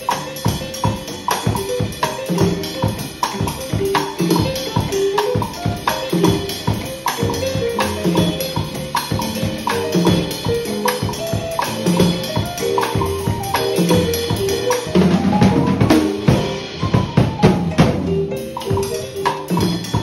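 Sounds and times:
drum kit rumba groove: 0:00.0 - 0:20.0.

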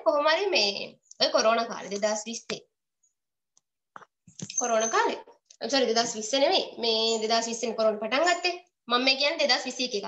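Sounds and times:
person speaking: 0:00.0 - 0:02.8, 0:04.0 - 0:10.0.

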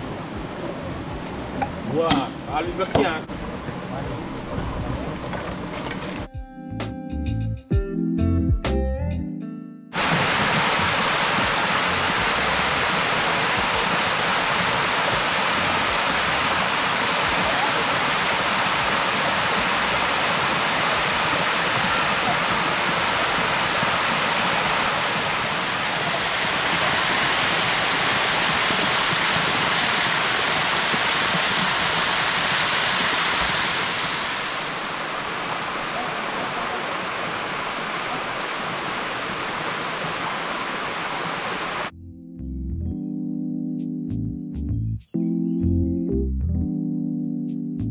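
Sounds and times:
water cascading over rock: 0:10.0 - 0:41.9.

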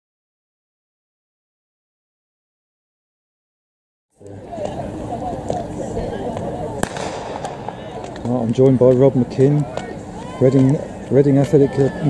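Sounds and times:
crowd voices: 0:04.2 - 0:12.0
starting pistol crack: 0:06.8 - 0:08.4.

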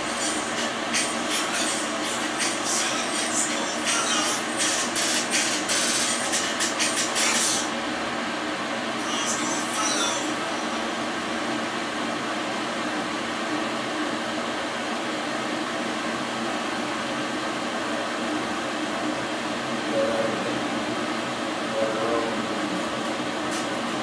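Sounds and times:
whirring room hum: 0:00.0 - 0:24.0.

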